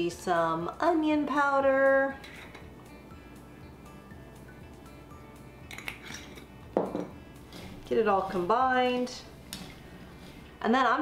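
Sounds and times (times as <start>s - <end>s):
soft background music: 0.0s - 11.0s
knock on wooden table: 6.8s - 7.1s.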